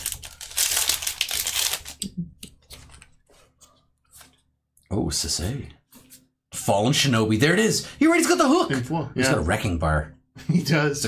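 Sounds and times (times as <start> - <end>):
foil wrapper crinkling and tearing: 0.0 - 2.1.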